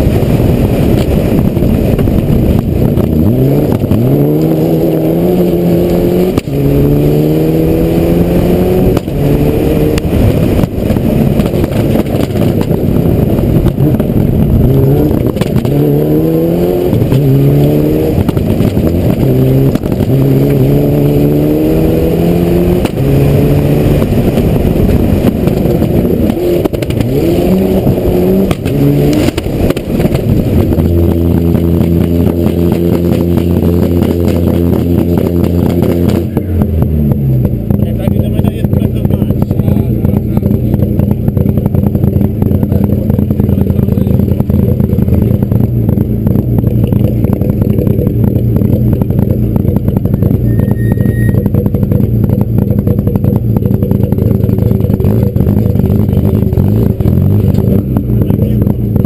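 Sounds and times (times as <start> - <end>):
rally car engine revving: 0.0 - 59.0
constant rattle: 10.1 - 15.8, 27.8 - 59.0.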